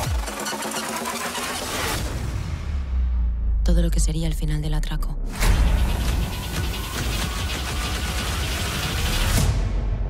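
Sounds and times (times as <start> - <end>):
rapid mechanical rattling: 0.0 - 2.0, 5.7 - 9.4.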